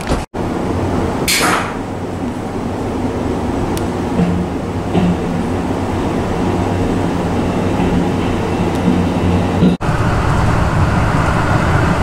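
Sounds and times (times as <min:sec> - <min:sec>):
train interior rumble and hum: 0:00.0 - 0:12.0.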